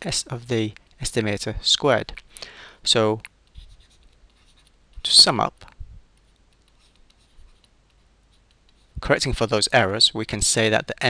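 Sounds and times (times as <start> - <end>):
stylus scratching on pen tablet: 3.4 - 5.3, 6.2 - 9.6.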